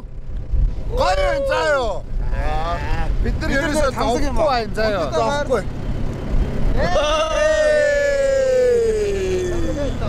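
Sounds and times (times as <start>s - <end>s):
truck rumbling on dirt road: 0.0s - 10.0s
men talking: 0.9s - 6.0s, 6.7s - 10.0s.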